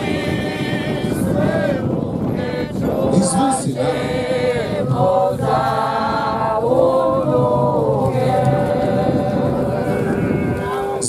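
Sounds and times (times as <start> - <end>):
mixed voices singing a cappella: 0.0 - 11.0.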